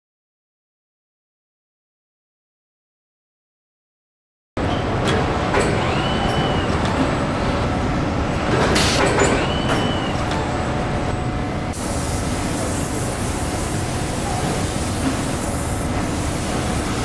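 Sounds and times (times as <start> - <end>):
industrial robots working: 4.6 - 17.0
steady mechanical hum: 4.6 - 17.0
short machine whines: 5.6 - 7.4, 8.8 - 10.6
air hiss: 11.8 - 17.0.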